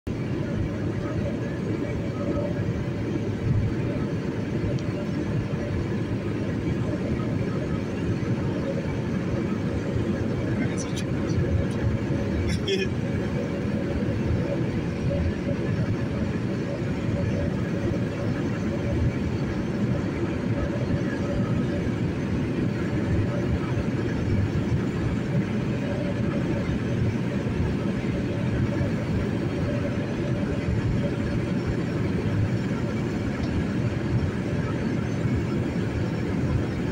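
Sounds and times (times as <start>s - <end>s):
road and engine noise inside car: 0.0s - 36.9s.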